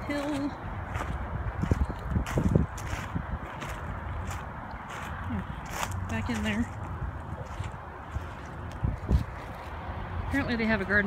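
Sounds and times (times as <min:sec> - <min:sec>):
footsteps crunching on gravel: 0:00.0 - 0:10.5.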